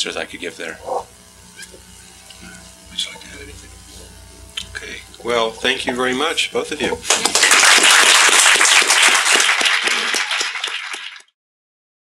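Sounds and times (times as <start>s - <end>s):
audience applauding: 7.1s - 11.3s.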